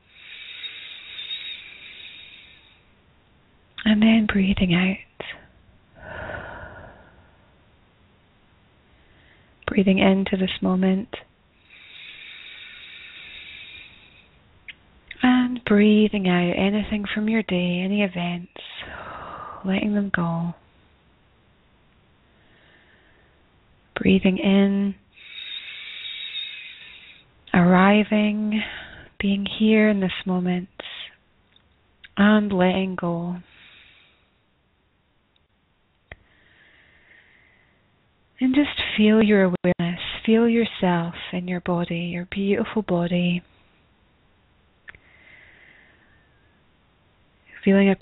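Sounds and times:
person breathing in deeply: 0:00.0 - 0:02.8, 0:06.0 - 0:07.5, 0:11.6 - 0:14.4, 0:18.8 - 0:19.6, 0:25.1 - 0:27.2, 0:33.4 - 0:34.4, 0:36.2 - 0:37.8, 0:45.0 - 0:46.3.

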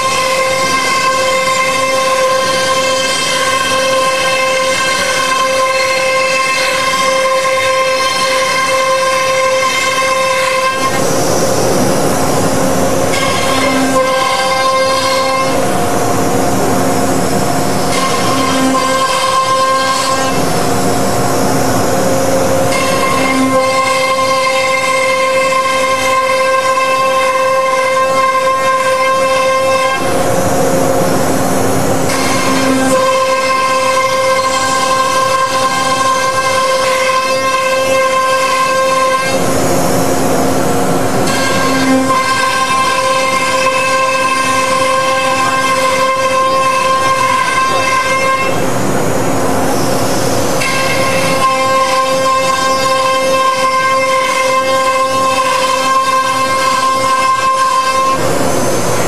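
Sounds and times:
router spindle whine: 0:00.0 - 0:59.0
rushing noise: 0:00.0 - 0:59.0.

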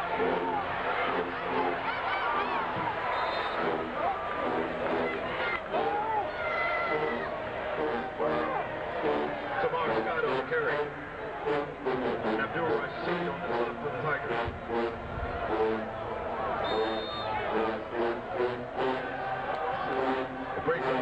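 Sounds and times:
crowd voices: 0:00.0 - 0:21.0
marching band brass: 0:00.0 - 0:21.0.

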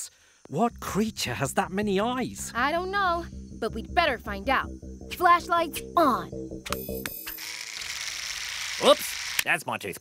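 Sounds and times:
electric toothbrush buzzing: 0:07.2 - 0:09.4.

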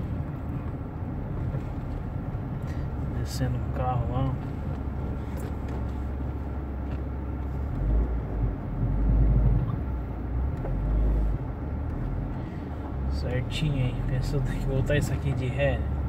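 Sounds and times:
car engine and tyres: 0:00.0 - 0:16.0
deep low rumbles: 0:00.0 - 0:16.0.

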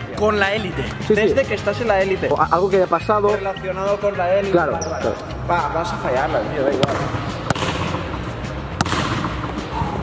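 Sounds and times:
basketball bouncing on court: 0:06.8 - 0:08.1, 0:08.7 - 0:09.6.

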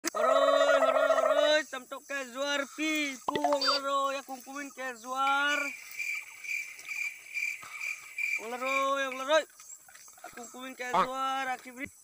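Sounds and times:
small animal chirping: 0:03.3 - 0:03.8.

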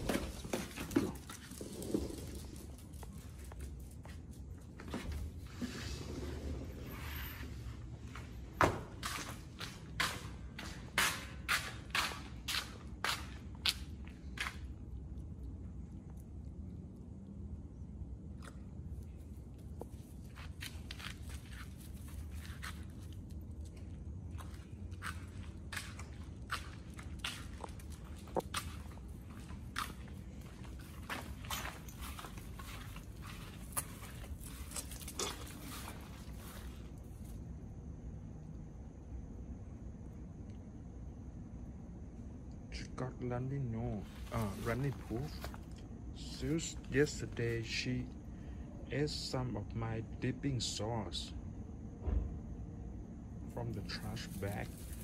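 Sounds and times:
footsteps on concrete: 0:00.0 - 0:05.8, 0:07.4 - 0:14.7, 0:19.8 - 0:36.9
low steady rumble: 0:13.5 - 0:55.0.

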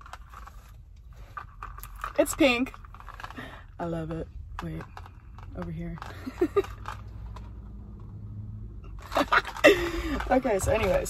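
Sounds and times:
plastic cup rustling and knocking: 0:00.0 - 0:08.2, 0:08.9 - 0:11.0.

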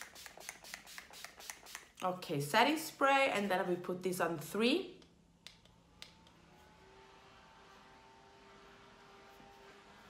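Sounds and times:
spray bottle hissing sprays: 0:00.0 - 0:02.0.

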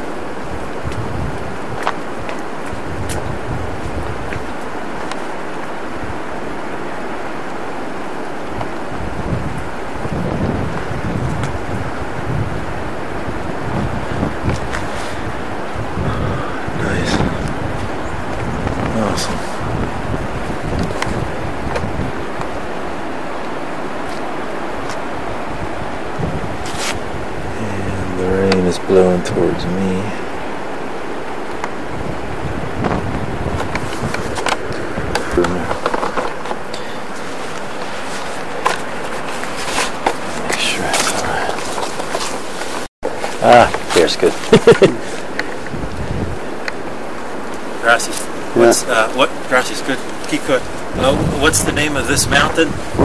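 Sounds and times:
wind buffeting microphone: 0:00.0 - 0:53.0
person's voice: 0:16.0 - 0:17.6, 0:18.8 - 0:19.6, 0:27.5 - 0:30.2, 0:35.2 - 0:35.8, 0:40.4 - 0:41.8, 0:43.4 - 0:45.1, 0:47.8 - 0:53.0.

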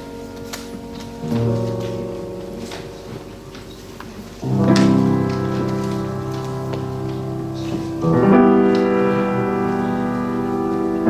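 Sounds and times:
grand piano chord ringing: 0:00.0 - 0:11.0.

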